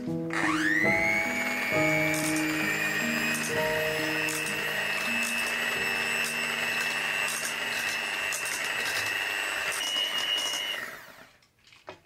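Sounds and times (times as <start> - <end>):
electric hand mixer whine: 0.3 - 11.4.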